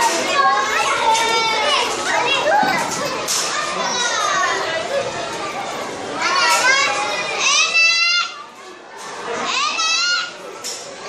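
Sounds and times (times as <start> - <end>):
children calling out and talking: 0.0 - 11.0.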